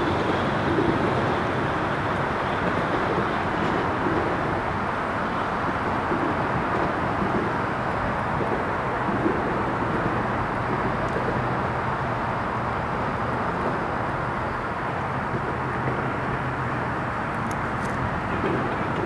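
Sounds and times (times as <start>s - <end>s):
diesel freight train rumble: 0.0s - 19.0s
road traffic passing: 0.0s - 19.0s.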